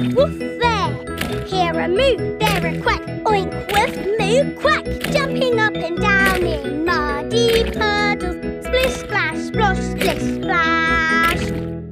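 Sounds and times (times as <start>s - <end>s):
childlike voices singing: 0.0s - 11.6s.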